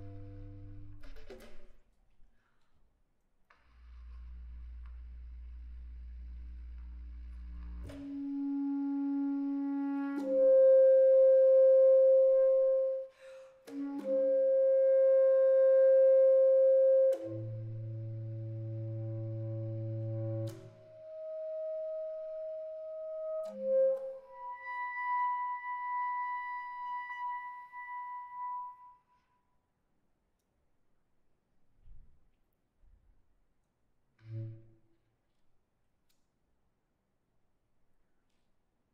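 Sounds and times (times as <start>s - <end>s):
bass clarinet sustained notes: 0.0s - 1.1s, 3.8s - 29.0s.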